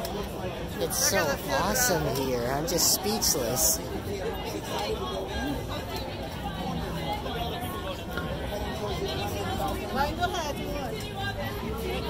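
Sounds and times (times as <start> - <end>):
crowd babble of voices: 0.0 - 12.0.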